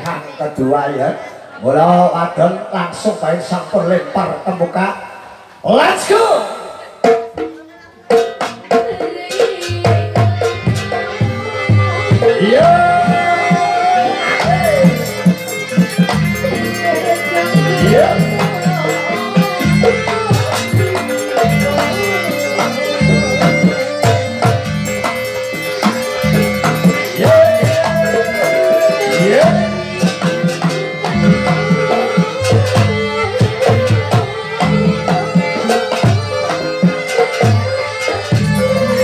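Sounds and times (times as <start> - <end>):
gamelan ensemble playing: 3.4 - 39.0
struck percussion accents: 6.3 - 39.0.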